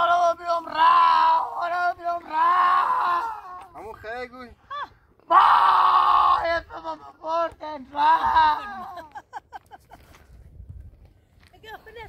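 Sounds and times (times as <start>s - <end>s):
person crying and wailing: 4.7s - 9.2s.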